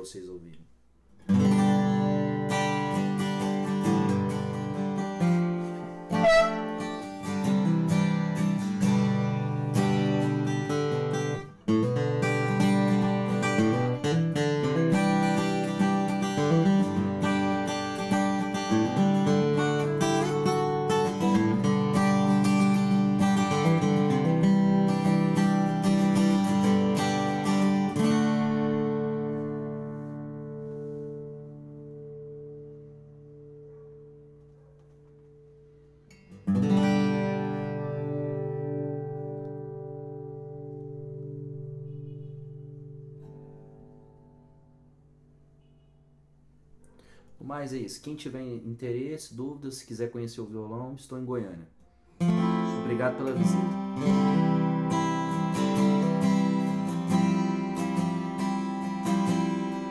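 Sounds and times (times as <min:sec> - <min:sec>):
acoustic guitar picking and strumming: 0:01.2 - 0:45.9, 0:52.0 - 0:59.9.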